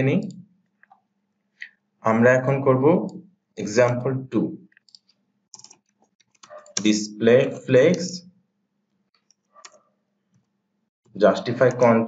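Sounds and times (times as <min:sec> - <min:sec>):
computer mouse clicks: 0:04.7 - 0:06.9, 0:09.1 - 0:10.5
man's voice: 0:11.2 - 0:12.0.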